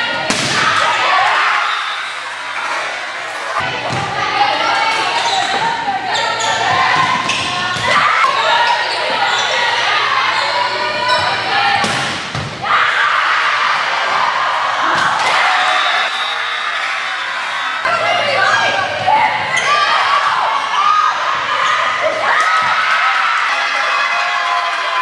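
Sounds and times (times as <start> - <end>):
voices shouting and talking: 0.0 - 25.0.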